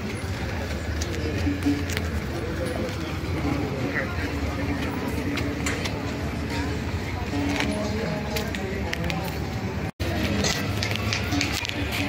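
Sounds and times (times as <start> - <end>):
music playing: 0.0 - 12.0
people's voices: 0.0 - 12.0.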